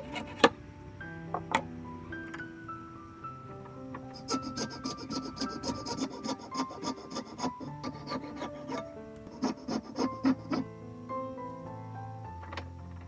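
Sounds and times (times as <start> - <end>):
file rasping on coconut shell: 4.2 - 10.7.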